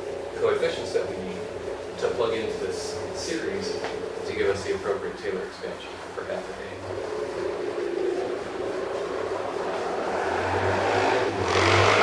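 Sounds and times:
rushing noise of passing vehicle: 6.8s - 12.0s
vehicle engine rumble: 6.8s - 12.0s.

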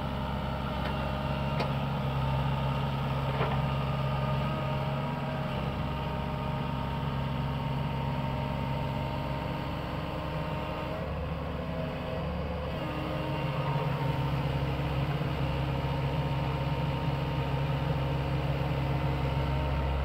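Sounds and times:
excavator diesel engine running: 0.0s - 20.0s.

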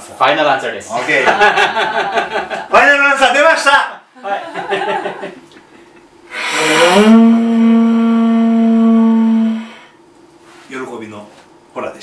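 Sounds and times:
conch shell trumpet blown: 6.3s - 9.9s.

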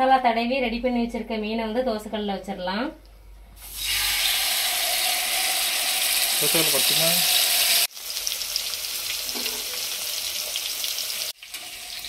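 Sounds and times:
fish sizzling in hot oil: 3.6s - 12.0s.

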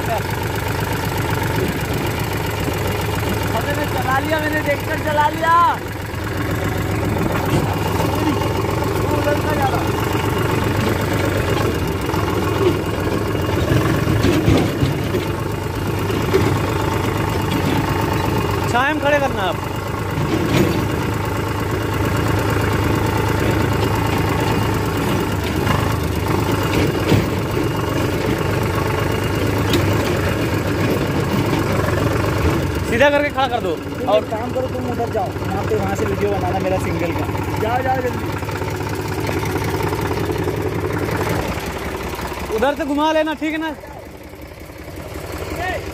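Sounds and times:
tractor diesel engine running: 0.0s - 45.9s.

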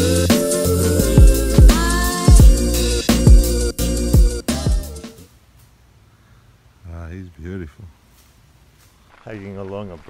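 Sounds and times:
music track: 0.0s - 5.3s.

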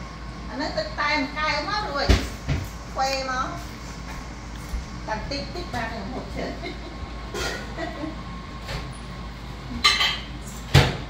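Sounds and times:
faint steady hum: 0.0s - 11.0s
low room noise rumble: 0.0s - 11.0s.

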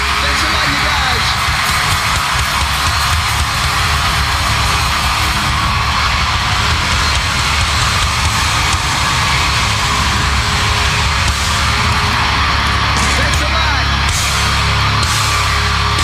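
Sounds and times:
distorted electric guitars: 0.0s - 16.0s
drum kit: 0.0s - 16.0s.

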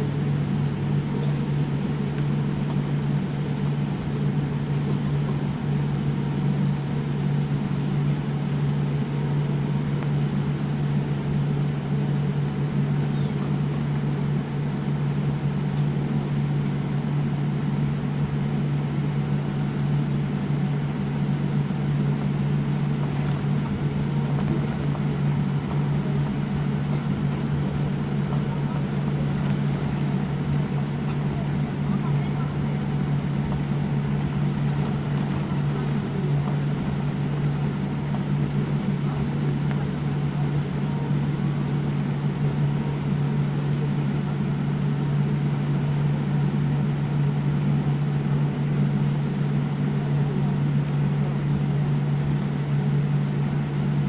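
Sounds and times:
airliner cabin hum and rush: 0.0s - 54.0s.

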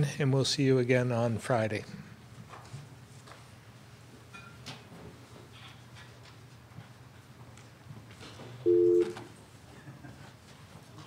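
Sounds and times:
steady electronic dial tone: 8.7s - 9.3s.

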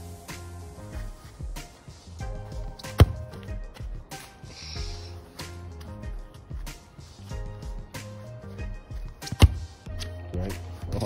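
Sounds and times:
background music with steady beat: 0.0s - 11.0s
football being kicked: 2.6s - 4.0s, 9.0s - 10.1s.

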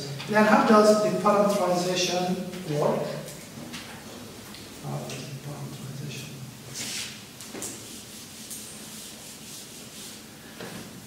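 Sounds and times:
eraser rubbing on whiteboard: 6.8s - 10.3s.

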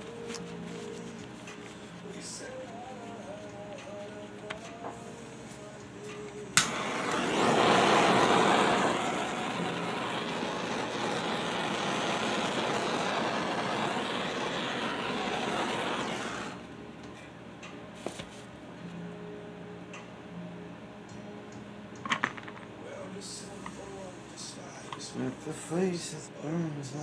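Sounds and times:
gas torch click: 6.6s - 16.6s
gas torch hissing: 6.6s - 16.7s.

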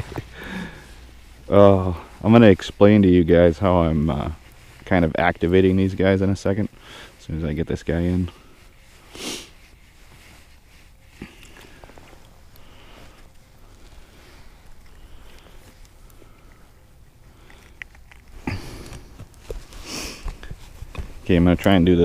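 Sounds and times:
loud sniff: 8.9s - 10.5s, 19.7s - 20.6s
clicks and rustles of hands: 14.5s - 21.8s.

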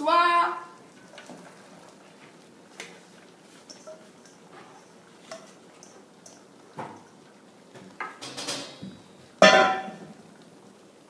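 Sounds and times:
steel bowl clanging against metal: 9.4s - 10.0s.

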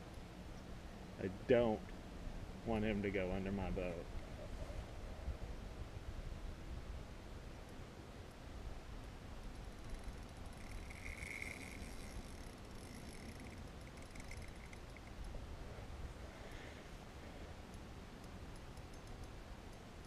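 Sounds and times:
fishing reel clicking: 9.5s - 15.4s
fishing reel drag buzzing: 9.6s - 15.4s.

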